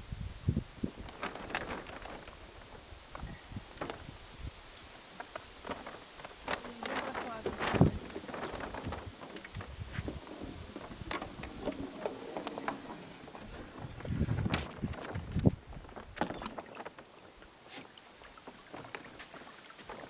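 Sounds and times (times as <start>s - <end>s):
windsurf rig knocking and clicking: 0.9s - 4.1s, 4.7s - 17.5s, 18.5s - 20.0s
rig handled on wooden dock: 0.9s - 20.0s.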